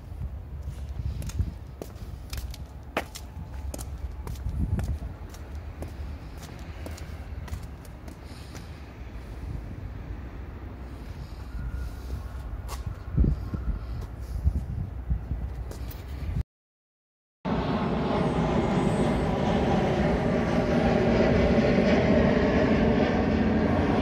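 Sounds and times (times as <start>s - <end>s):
footsteps walking: 0.6s - 8.8s, 12.0s - 13.0s
low rumble: 17.5s - 24.0s.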